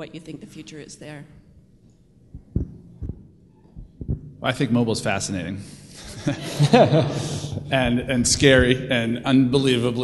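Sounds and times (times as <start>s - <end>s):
dull low handling thumps: 2.3s - 4.5s.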